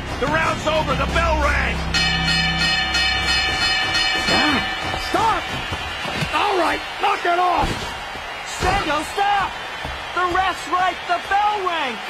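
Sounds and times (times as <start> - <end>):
boxing ring bell clanging: 1.9 - 5.9.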